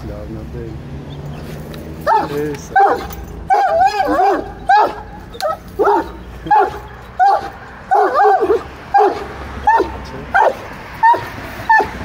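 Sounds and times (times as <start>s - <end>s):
puppy whining yelps: 2.1s - 12.0s.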